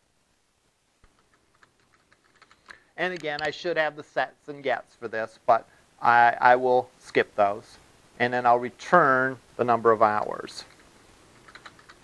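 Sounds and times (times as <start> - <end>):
faint computer keyboard typing: 1.0 - 3.5, 10.6 - 12.0.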